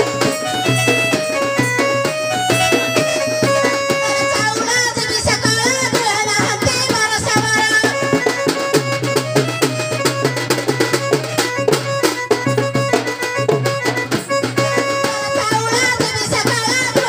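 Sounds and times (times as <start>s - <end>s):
melody of long held notes: 0.0s - 4.6s.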